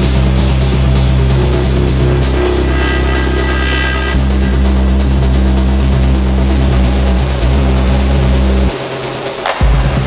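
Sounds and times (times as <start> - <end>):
droning bass: 0.0 - 9.0
steady hi-hat pattern: 0.0 - 10.0.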